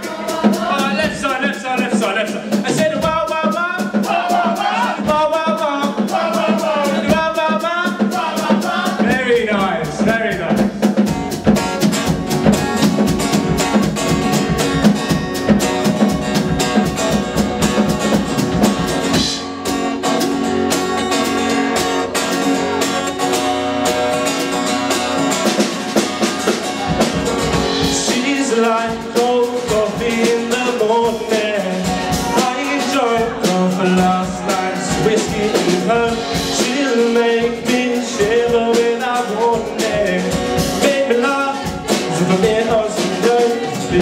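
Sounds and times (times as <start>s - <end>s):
acoustic guitar strumming: 0.0s - 44.0s
drum kit: 0.0s - 44.0s.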